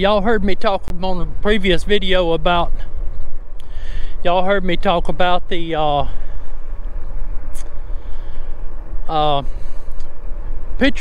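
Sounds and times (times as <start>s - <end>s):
bike tyres on rough asphalt: 0.0s - 11.0s
wind rumble on microphone: 0.0s - 11.0s.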